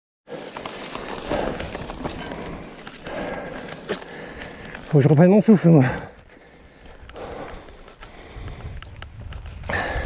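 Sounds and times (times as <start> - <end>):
rider breathing hard: 0.3 - 4.9, 5.7 - 10.0
bike tyres rolling over leaves: 0.3 - 10.0
leaves and twigs crackling: 0.3 - 10.0.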